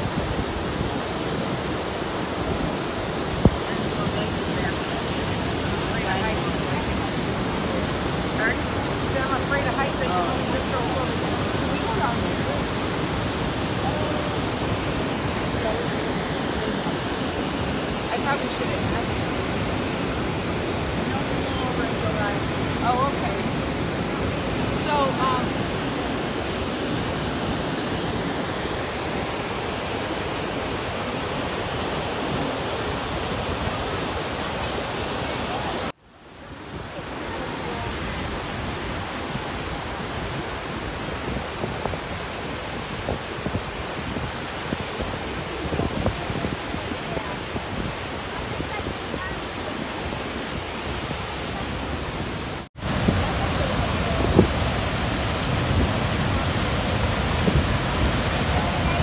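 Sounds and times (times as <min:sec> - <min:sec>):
waterfall roaring: 0:00.0 - 0:59.0.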